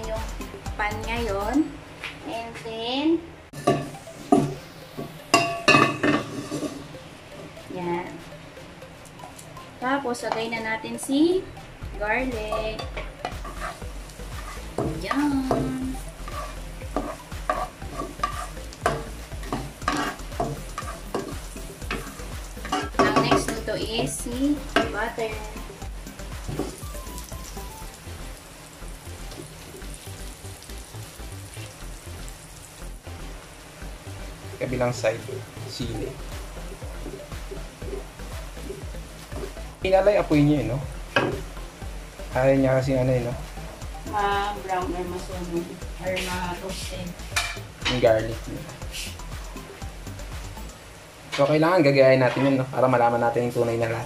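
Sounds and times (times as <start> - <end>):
background music: 0.0 - 54.0
garlic sizzling in hot oil: 3.6 - 54.0
knocks on frying pan: 41.1 - 41.5.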